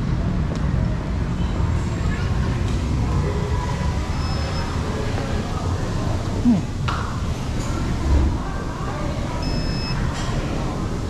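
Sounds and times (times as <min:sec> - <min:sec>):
electronic beep: 0:04.2 - 0:04.6, 0:09.4 - 0:10.0.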